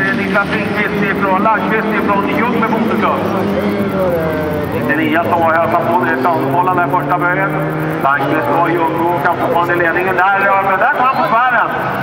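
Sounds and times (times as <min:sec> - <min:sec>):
person talking: 0:00.0 - 0:11.3
racing car engines droning: 0:00.0 - 0:12.0.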